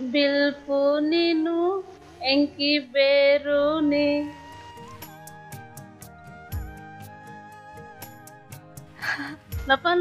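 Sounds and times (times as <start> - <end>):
woman singing: 0.0 - 4.5.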